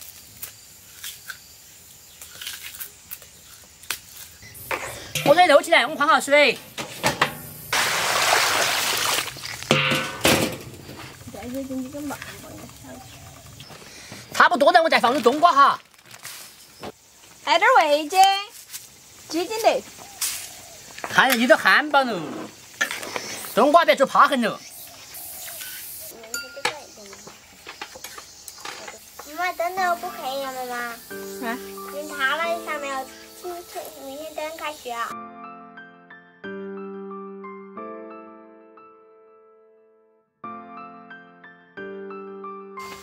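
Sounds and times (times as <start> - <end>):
metal cookware clanking: 4.7 - 7.7, 9.7 - 11.0
water poured out of a wok: 7.4 - 10.8.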